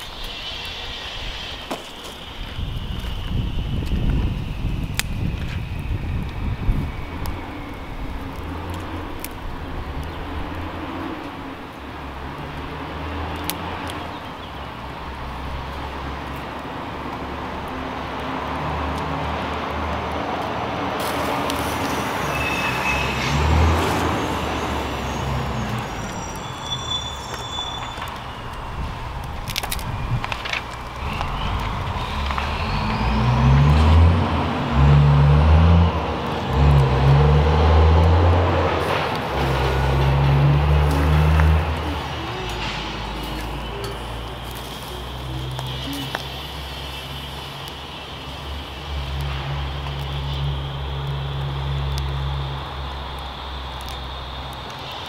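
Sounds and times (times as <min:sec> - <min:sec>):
wood fire rushing and rumbling: 0:00.0 - 0:55.0
sticks snapping: 0:12.4 - 0:14.4, 0:28.0 - 0:34.1, 0:36.5 - 0:46.6.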